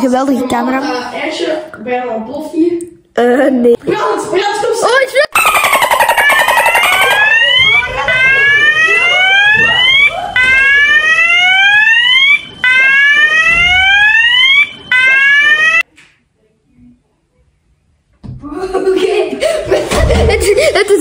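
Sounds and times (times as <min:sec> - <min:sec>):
fire alarm whooping: 0:05.3 - 0:15.8.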